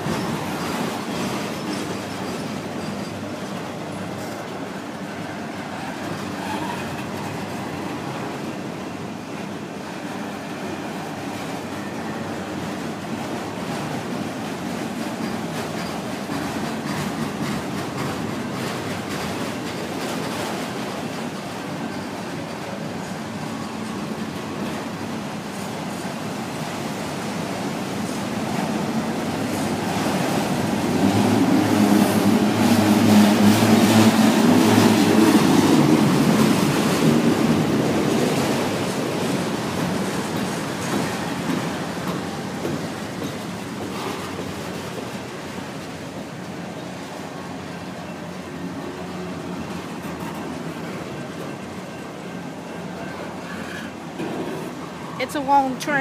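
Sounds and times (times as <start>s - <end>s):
freight train rumbling past: 0.0s - 56.0s.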